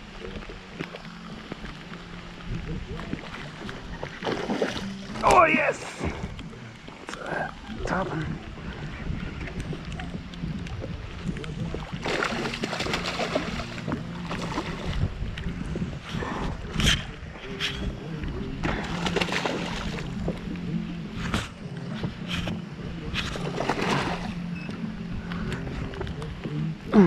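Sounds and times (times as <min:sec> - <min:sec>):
fish splashing at water surface: 0:11.9 - 0:15.0, 0:18.6 - 0:20.2
sharp water slaps: 0:12.0 - 0:15.0, 0:18.6 - 0:20.1, 0:23.4 - 0:24.3.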